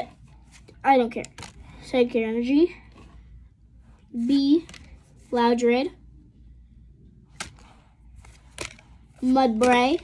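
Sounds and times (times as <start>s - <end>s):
trading cards snapping: 7.4s - 8.9s.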